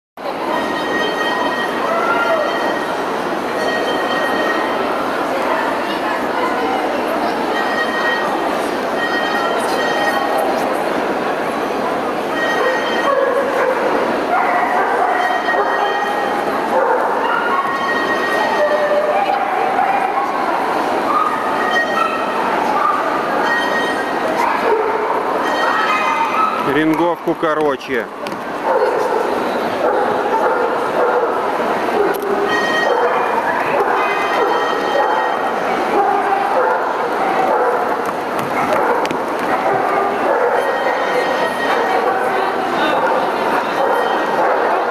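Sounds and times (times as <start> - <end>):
crowd chatter in echoing hall: 0.2 - 44.9
dogs yipping and barking: 12.4 - 26.7, 28.6 - 44.9
dog barking and yipping: 32.0 - 41.2.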